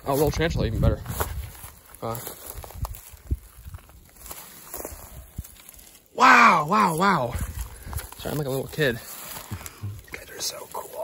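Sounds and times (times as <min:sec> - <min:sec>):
footsteps in dry grass: 0:00.0 - 0:11.0.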